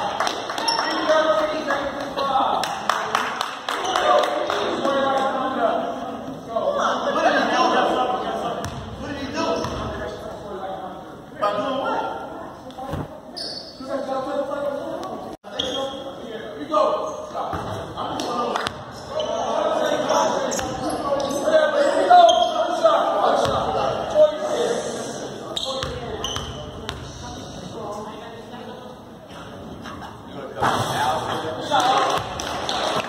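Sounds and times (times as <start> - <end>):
echoing chatter of people: 0.0 - 33.0.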